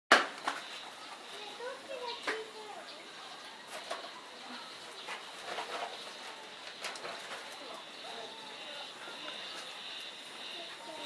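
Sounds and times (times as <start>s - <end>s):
faint cooing bird calls: 0.6s - 11.0s.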